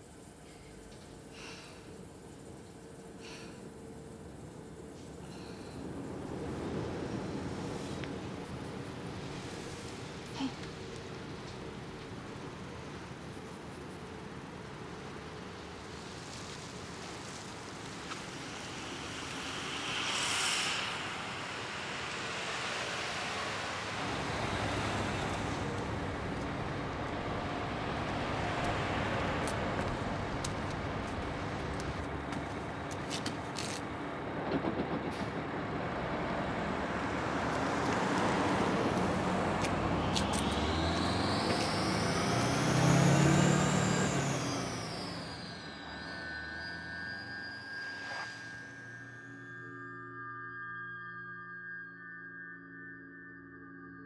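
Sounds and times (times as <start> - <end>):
street traffic: 0.0 - 49.2
bus air brakes hissing: 18.0 - 25.8
vehicle passing: 34.6 - 45.5.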